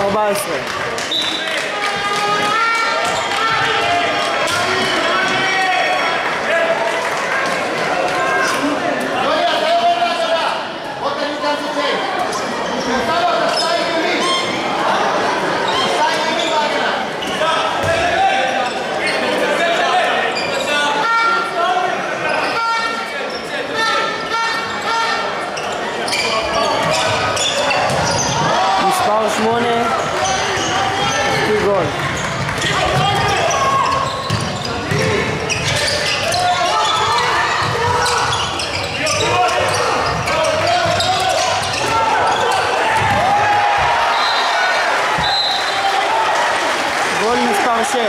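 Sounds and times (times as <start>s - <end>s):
players calling out: 11.8s - 48.0s.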